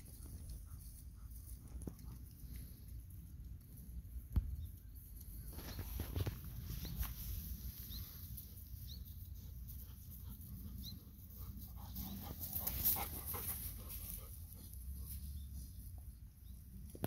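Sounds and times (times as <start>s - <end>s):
steps rustling in dry stalks: 5.4s - 10.2s.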